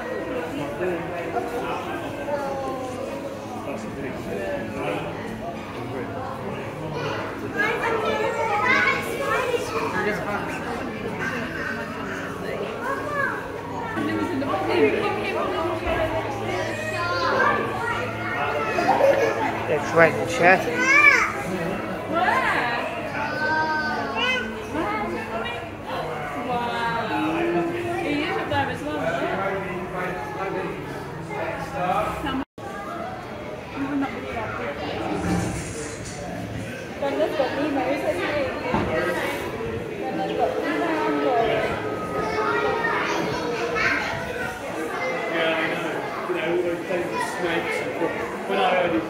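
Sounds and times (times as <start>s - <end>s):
children chattering and calling out: 0.0s - 49.0s.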